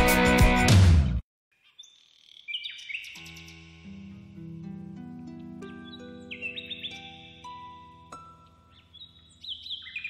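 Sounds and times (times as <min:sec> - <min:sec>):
loud music: 0:00.0 - 0:01.2
high whistled bird calls: 0:01.6 - 0:03.6, 0:05.7 - 0:07.4, 0:08.7 - 0:10.0
birds chirping: 0:01.6 - 0:04.4, 0:05.3 - 0:10.0.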